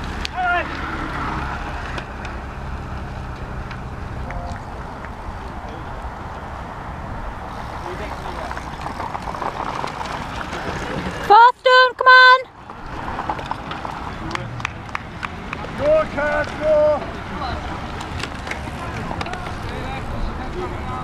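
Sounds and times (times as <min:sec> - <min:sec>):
steady outdoor noise: 0:00.0 - 0:21.0.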